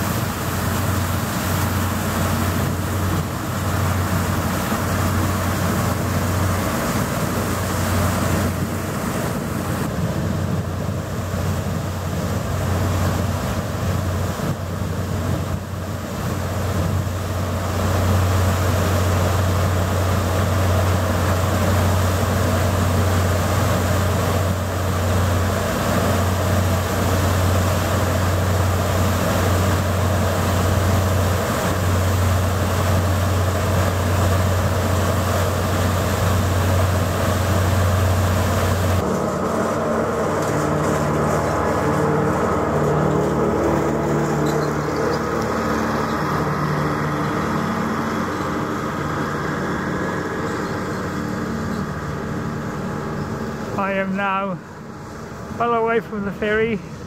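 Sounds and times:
ferry engines droning: 0.0s - 57.0s
rushing water: 0.0s - 57.0s
wind: 0.0s - 57.0s.

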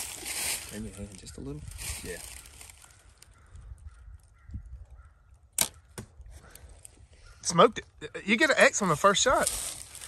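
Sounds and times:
arrow striking target: 5.6s - 6.1s.

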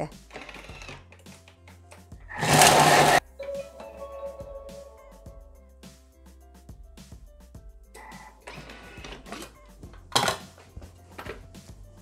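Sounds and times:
background music: 0.0s - 12.0s
food processor handling noise: 0.3s - 3.2s, 10.1s - 10.6s.

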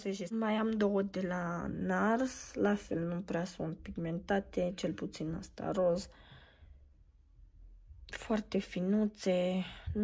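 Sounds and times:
person talking: 0.0s - 6.1s, 8.1s - 10.0s
faint breath: 6.1s - 7.0s.

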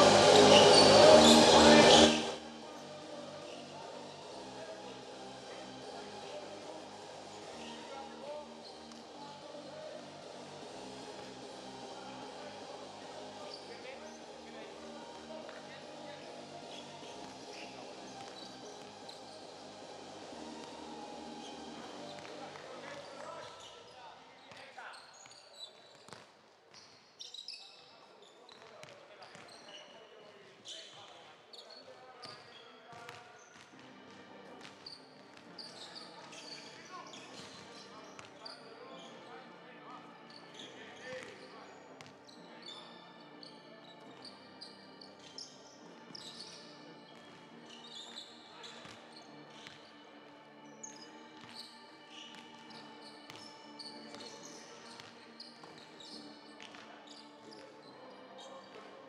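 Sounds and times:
short high squeaks: 0.0s - 2.3s
basketballs bouncing on court: 32.2s - 33.8s, 53.3s - 53.5s.

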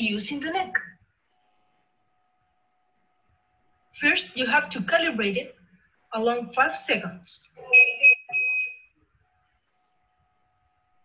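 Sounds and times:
electronic buzzer beeping: 7.7s - 8.9s.

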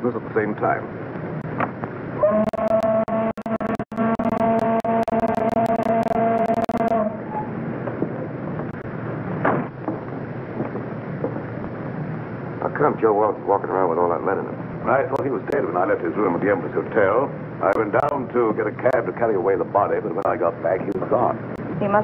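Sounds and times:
film soundtrack crackle: 1.2s - 21.8s
ferry horn blast: 2.2s - 7.2s.

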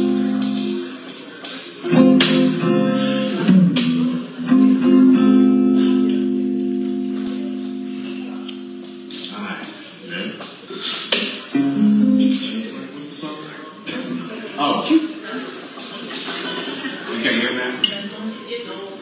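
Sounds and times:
guitar playing slow chords: 0.0s - 1.2s, 1.8s - 9.7s, 11.5s - 12.7s.

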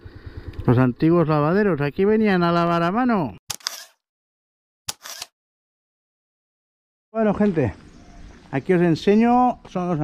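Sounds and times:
camera shutter click: 3.5s - 4.0s, 4.9s - 5.4s.

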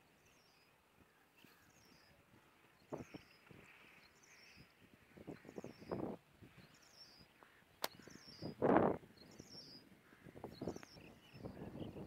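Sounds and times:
bird chirping: 0.0s - 12.0s.

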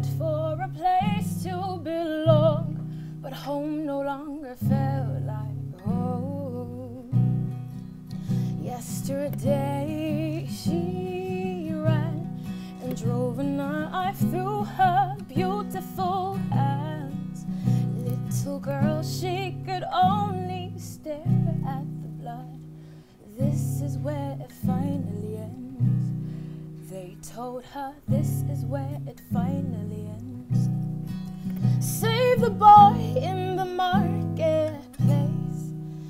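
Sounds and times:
acoustic guitar strumming chords: 0.0s - 36.0s
woman singing: 0.0s - 36.0s.

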